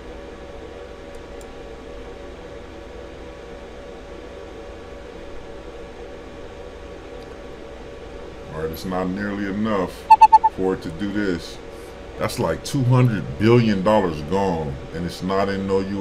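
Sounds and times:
fan hum and hiss: 0.0s - 16.0s
faint steady tone: 10.1s - 10.6s.

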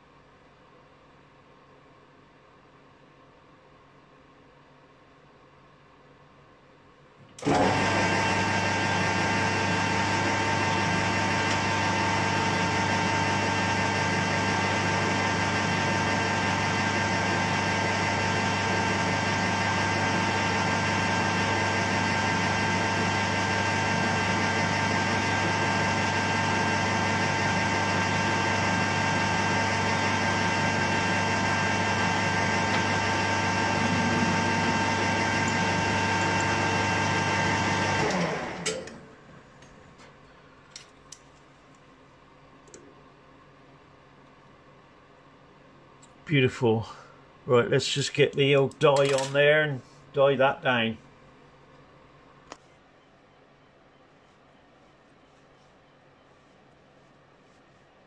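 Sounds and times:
metal lathe motor whine: 7.4s - 39.0s.

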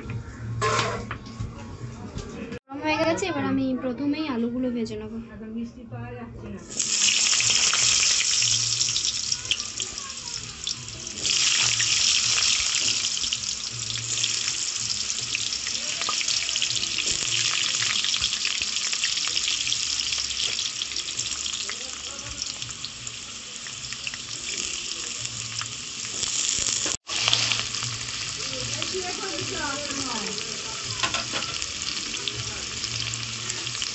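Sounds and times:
potatoes sizzling in hot oil: 6.7s - 33.9s.

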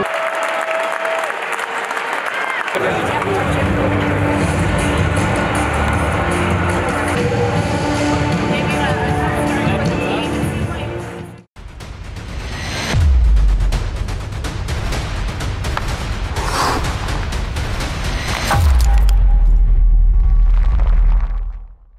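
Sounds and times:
deep bass boom: 18.5s - 21.9s.

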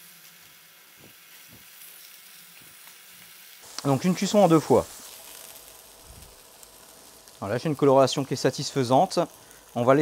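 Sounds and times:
chicken frying in oil: 0.0s - 10.0s.

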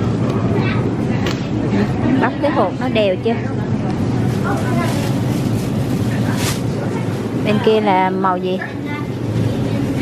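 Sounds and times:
steady low hum: 0.0s - 10.0s
faint voices: 0.4s - 10.0s.

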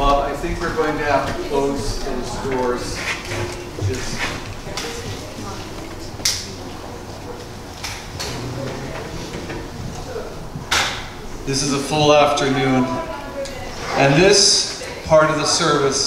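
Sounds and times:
faint voices: 0.0s - 16.0s.

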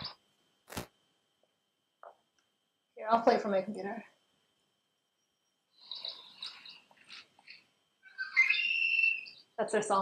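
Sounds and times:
bird chattering calls: 5.8s - 9.5s
bird song: 5.8s - 9.6s.

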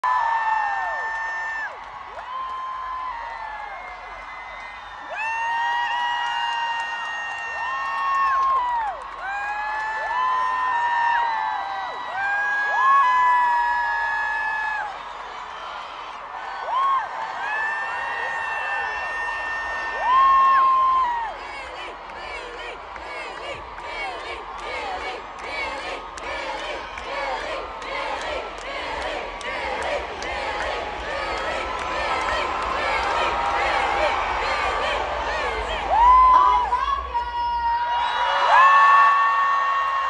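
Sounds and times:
crowd screaming and cheering: 0.0s - 40.0s.

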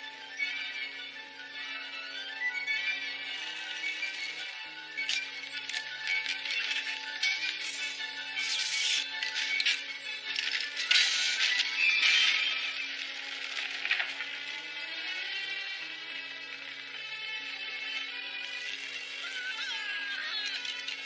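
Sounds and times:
film score with long held notes: 0.0s - 21.0s
clatter and crackle: 5.0s - 14.6s.

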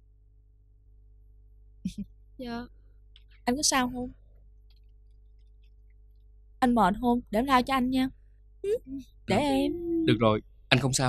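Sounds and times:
faint electrical hum: 0.0s - 11.0s
person speaking: 8.7s - 11.0s.

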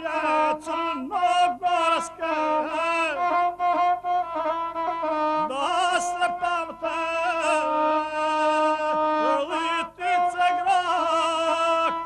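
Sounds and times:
bowed single-string fiddle: 0.0s - 12.0s.

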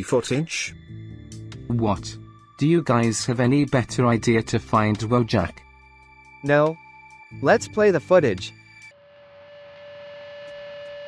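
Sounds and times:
steady electronic tone: 5.2s - 11.0s.

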